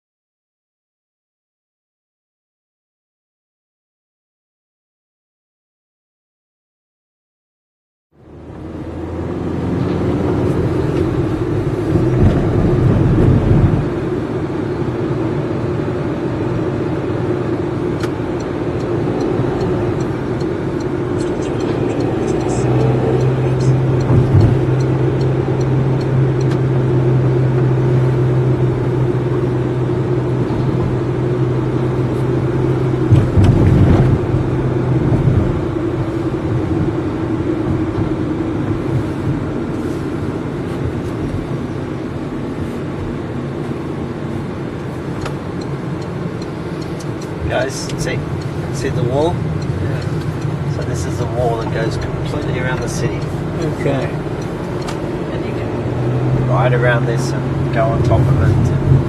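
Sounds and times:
car engine and road noise: 8.1s - 59.0s.

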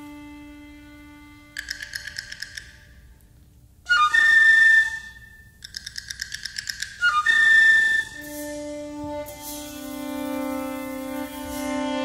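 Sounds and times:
clicking percussion strikes: 1.4s - 3.4s, 5.6s - 12.0s
loud flute note: 7.1s - 12.0s.

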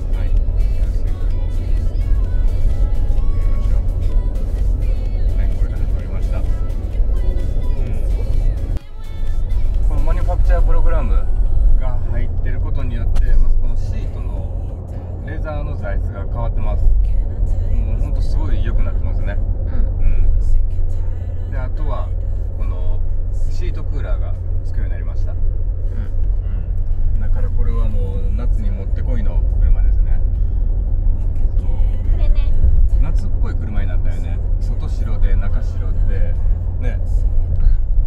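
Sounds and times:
car cabin road and engine drone: 0.0s - 38.0s.

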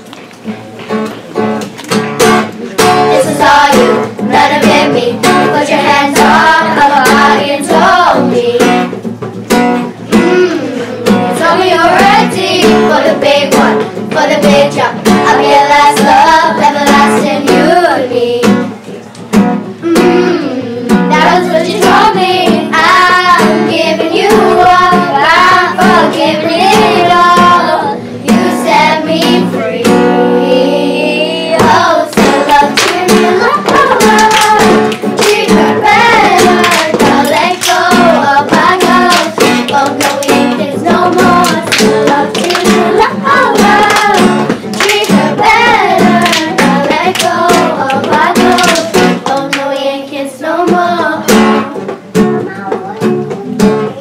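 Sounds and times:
strummed acoustic guitar: 0.0s - 54.0s
children's choir singing: 2.7s - 9.1s, 10.1s - 18.8s, 19.8s - 52.0s.

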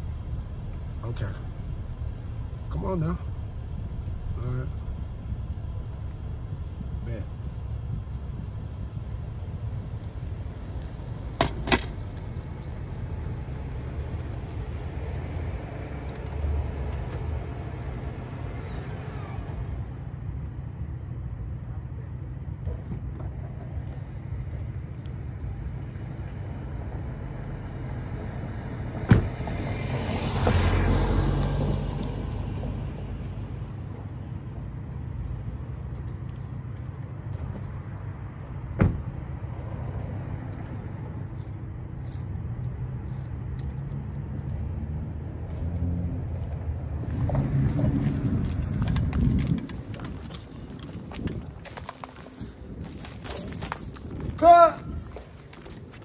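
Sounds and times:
pickup truck engine rumbling: 0.0s - 21.6s, 46.2s - 54.3s
car door clunks: 29.1s - 29.4s, 38.8s - 39.1s.

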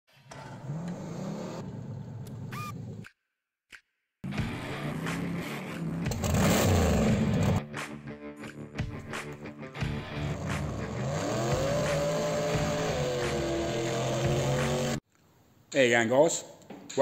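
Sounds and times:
car engine revving: 0.3s - 3.0s, 4.3s - 7.6s, 9.8s - 15.0s
music: 3.7s - 15.0s.

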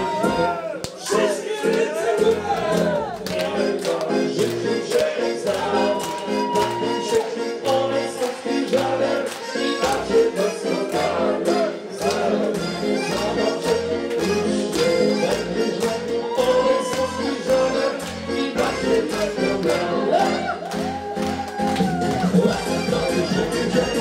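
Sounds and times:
electronic keyboard dance music: 0.0s - 24.0s.

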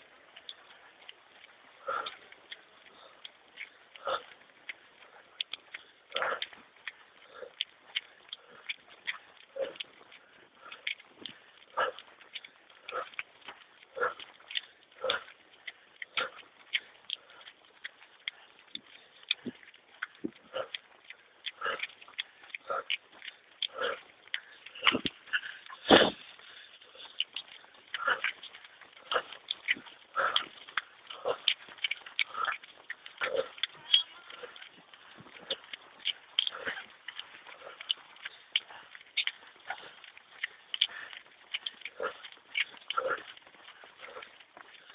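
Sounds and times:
hard breathing: 0.0s - 44.9s
runners' footsteps on pavement: 0.0s - 44.9s.

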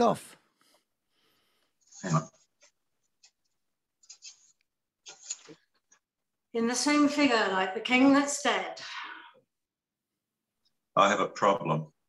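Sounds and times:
paper pages rustling: 4.0s - 6.0s.

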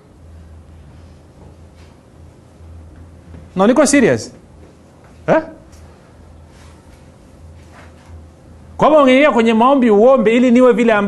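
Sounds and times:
faint low hum: 0.0s - 11.0s
man speaking loudly: 3.6s - 4.4s, 5.3s - 5.7s, 8.8s - 11.0s.

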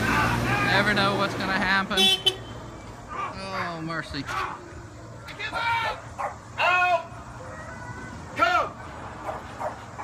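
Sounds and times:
dog barking: 3.1s - 3.6s, 6.2s - 6.5s, 9.2s - 10.0s.

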